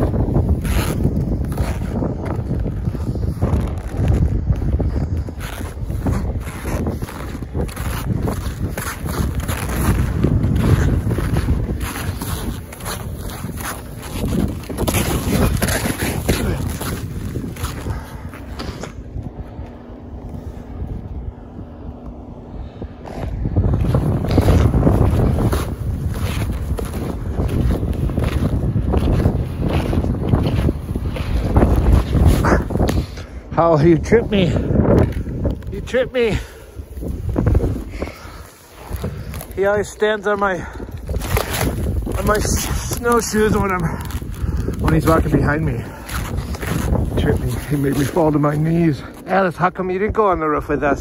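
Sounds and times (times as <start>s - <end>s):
snowshoe steps crunching in snow: 0.0s - 19.1s, 23.1s - 33.2s, 35.0s - 49.3s
wind buffeting microphone: 0.0s - 51.0s.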